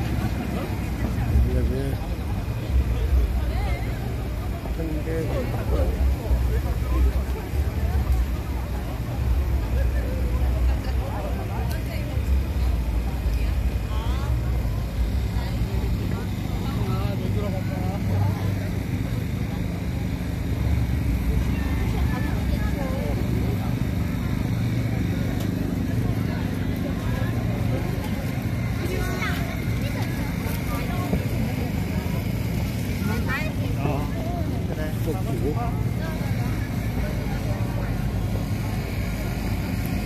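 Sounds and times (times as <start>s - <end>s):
chatter of passers-by: 0.0s - 40.0s
low rumble of traffic: 0.0s - 40.0s.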